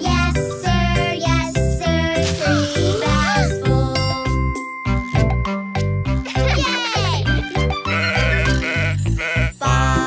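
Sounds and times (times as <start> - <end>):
children's song music: 0.0 - 10.0
cartoon sheep bleating: 7.8 - 10.0.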